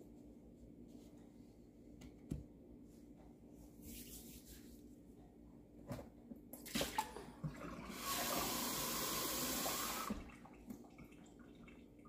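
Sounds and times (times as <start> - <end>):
water running from tap: 7.7 - 10.3.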